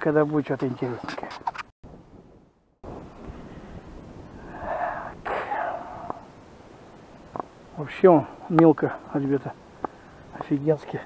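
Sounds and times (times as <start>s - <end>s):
steady outdoor hiss: 0.0s - 11.0s
person exhaling loudly: 4.3s - 6.3s.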